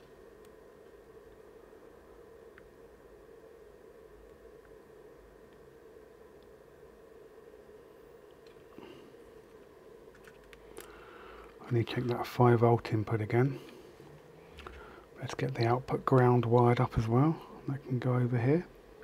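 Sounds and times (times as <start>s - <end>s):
faint room hum: 0.0s - 19.0s.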